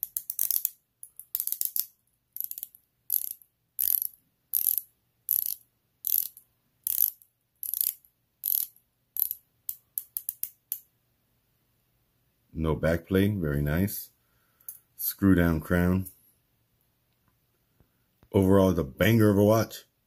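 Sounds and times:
watch bezel ratcheting clicks: 0:00.0 - 0:09.4.

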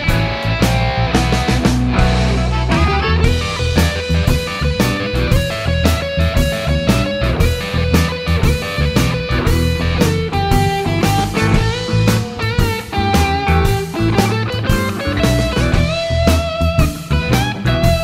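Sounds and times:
bass: 0:00.0 - 0:18.0
electric guitar blues line: 0:00.0 - 0:18.0
steady drum beat: 0:00.0 - 0:18.0.

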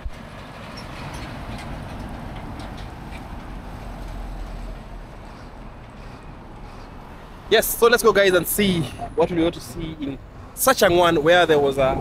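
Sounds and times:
heavy trucks driving past: 0:00.0 - 0:12.0.

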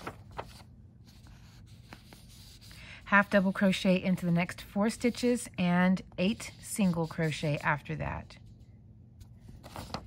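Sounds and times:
fingers scratching on paper: 0:01.4 - 0:04.2, 0:06.2 - 0:08.3.

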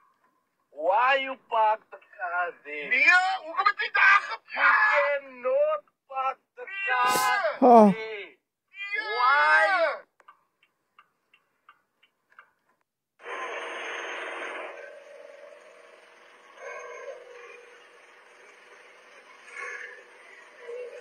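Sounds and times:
person speaking: 0:07.0 - 0:08.0
faint ticks: 0:10.2 - 0:12.8.

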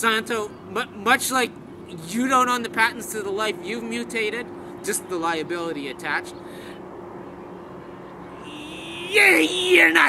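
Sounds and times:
steady hum: 0:08.4 - 0:10.0.

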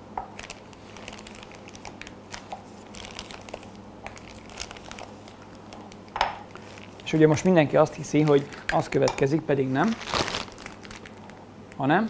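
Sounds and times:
plastic piping bag crinkling: 0:00.2 - 0:11.8.

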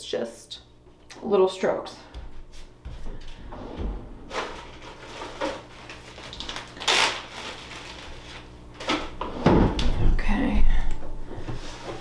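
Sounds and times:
footsteps: 0:02.0 - 0:05.6
drawer opening and shutting: 0:03.4 - 0:05.6.

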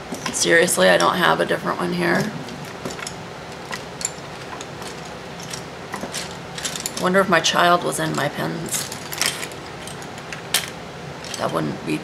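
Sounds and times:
plastic pens clattering: 0:02.2 - 0:07.1, 0:08.0 - 0:11.6.

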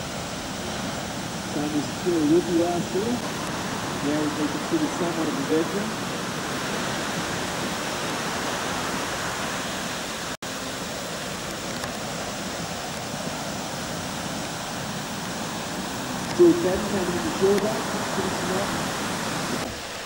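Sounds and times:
surf roaring: 0:00.0 - 0:20.0.

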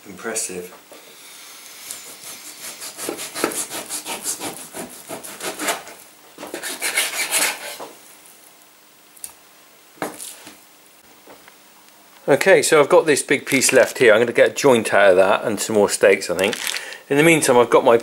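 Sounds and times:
knife sawing through meat: 0:02.0 - 0:07.8.

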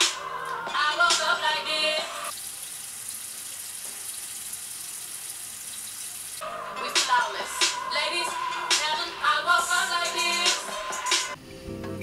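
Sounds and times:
background music: 0:00.0 - 0:02.3, 0:06.4 - 0:12.0
tap water running: 0:02.2 - 0:06.4.

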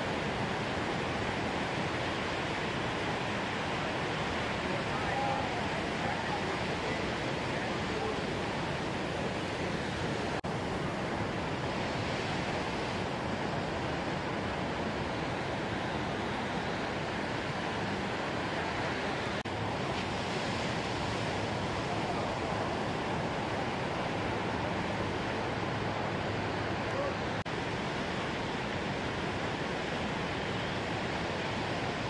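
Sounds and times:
heavy ocean surf: 0:00.0 - 0:32.0.

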